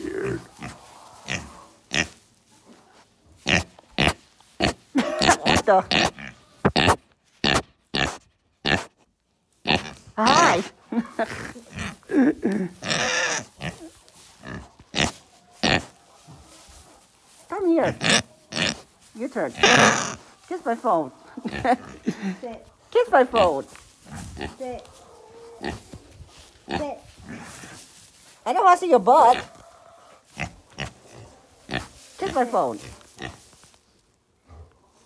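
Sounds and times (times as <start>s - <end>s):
pig grunting: 0.0s - 2.2s, 19.5s - 20.3s, 21.3s - 22.4s, 24.1s - 25.9s.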